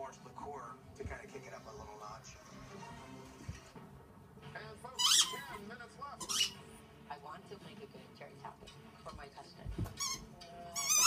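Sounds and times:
squeaky toy squeaks: 5.0 - 5.6, 6.2 - 6.6, 9.9 - 11.0.

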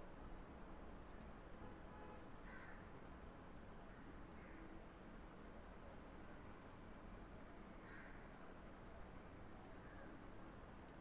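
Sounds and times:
faint room hiss: 0.0 - 11.0
computer mouse double click: 10.8 - 11.0.

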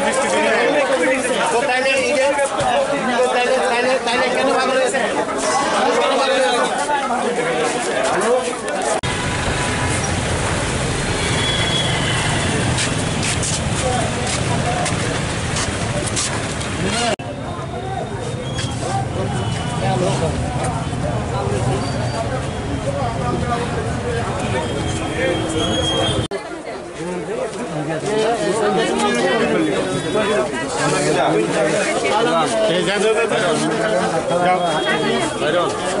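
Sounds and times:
men chattering: 0.0 - 9.1, 11.9 - 26.3, 27.0 - 36.0
street noise hiss: 3.6 - 36.0
diesel engine rumbling: 9.0 - 17.2.

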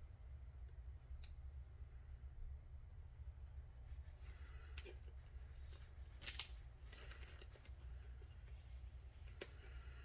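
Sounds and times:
low steady hum: 0.0 - 10.0
plastic sleeve rustling: 3.8 - 10.0.

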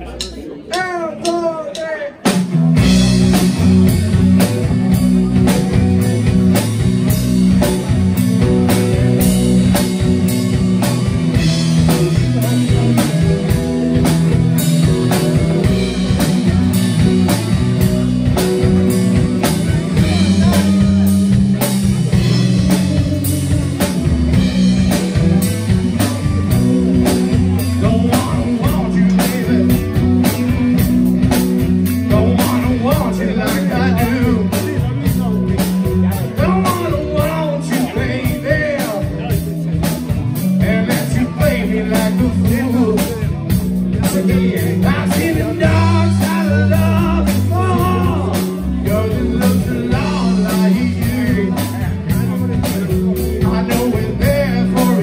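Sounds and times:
blues-rock band playing: 0.0 - 55.0.

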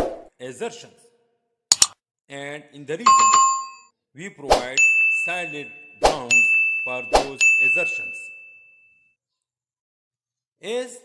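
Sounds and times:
bright ding: 4.8 - 8.7.

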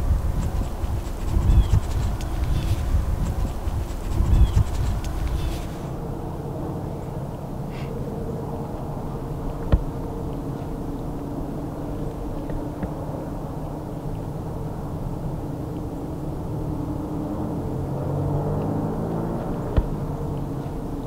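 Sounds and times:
distant engine drone: 0.0 - 21.0.

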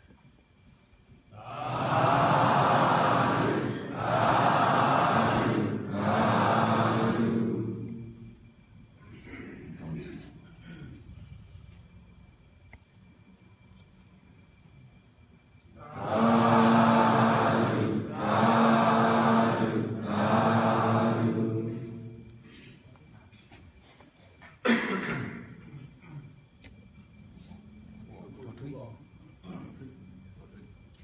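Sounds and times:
faint high whine: 0.0 - 31.0.

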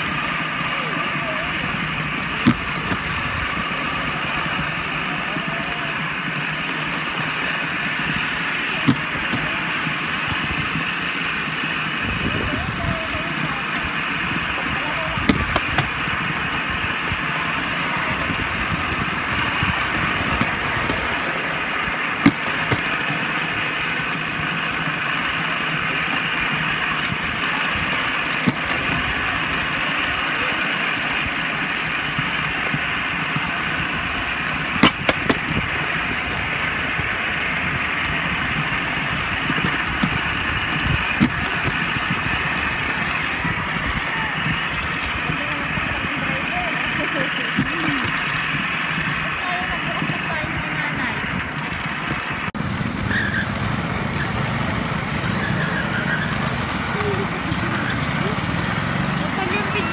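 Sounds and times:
trolley wheels rumbling on rails: 0.0 - 59.9.

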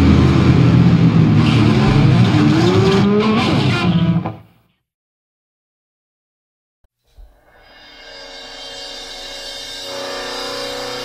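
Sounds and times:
distorted hardcore band: 0.0 - 4.4
thick guitar noise: 0.0 - 4.5.

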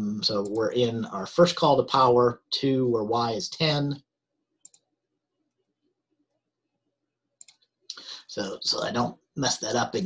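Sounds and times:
computer mouse clicks: 4.6 - 4.9, 7.4 - 7.7.

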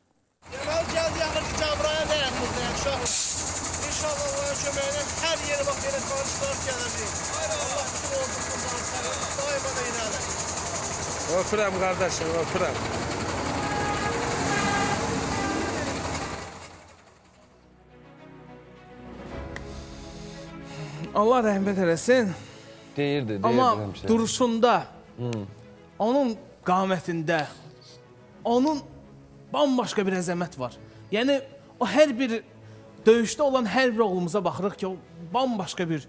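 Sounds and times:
man talking: 0.5 - 3.2, 3.8 - 10.3, 11.3 - 12.8, 21.0 - 27.6.

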